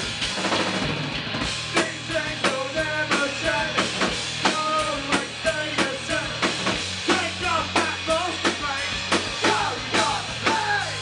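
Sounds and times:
drum kit beating: 0:00.0 - 0:11.0
rock band playing: 0:00.0 - 0:11.0.

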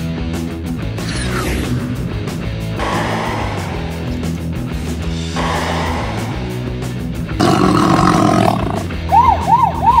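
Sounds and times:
background music: 0:00.0 - 0:10.0
dinosaur roar: 0:01.0 - 0:02.1, 0:07.3 - 0:09.0
siren rising and falling: 0:09.0 - 0:10.0.

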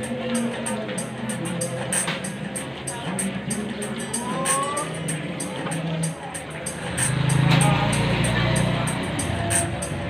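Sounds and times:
background music with steady beat: 0:00.0 - 0:10.0
street noise: 0:00.0 - 0:10.0
motorcycle engine passing: 0:06.8 - 0:09.8.

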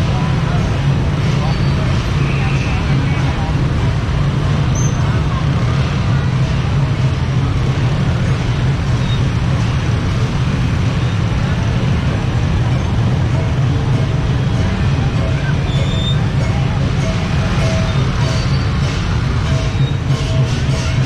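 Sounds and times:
crowd voices: 0:00.0 - 0:21.0
scooter engines humming: 0:00.0 - 0:21.0.

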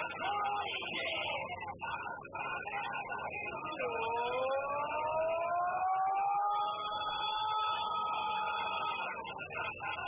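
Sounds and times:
siren-like gliding wail: 0:03.8 - 0:07.6.

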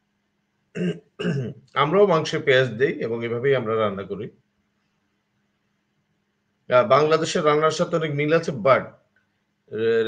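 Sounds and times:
man speaking: 0:00.8 - 0:04.3, 0:06.7 - 0:09.0, 0:09.7 - 0:10.0.

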